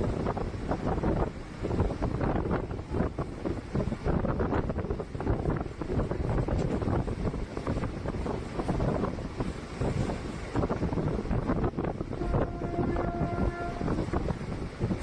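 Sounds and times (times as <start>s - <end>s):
train wheels rumbling on rail: 0.0s - 15.0s
wind buffeting microphone: 0.0s - 15.0s
train horn: 12.1s - 14.2s.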